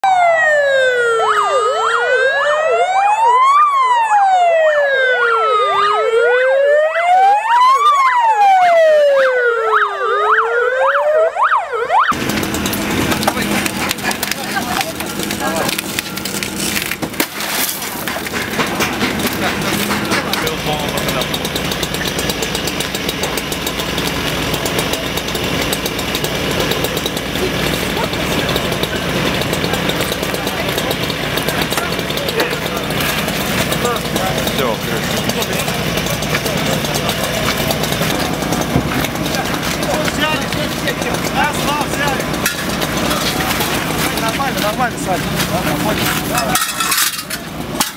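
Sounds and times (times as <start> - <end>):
ambulance siren wailing: 0.0 - 16.8
metal clatter and knocks: 12.2 - 47.9.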